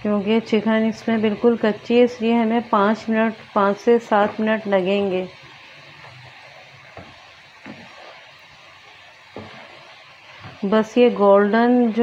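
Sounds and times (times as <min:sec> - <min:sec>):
chicken deep-frying in oil: 0:00.0 - 0:12.0.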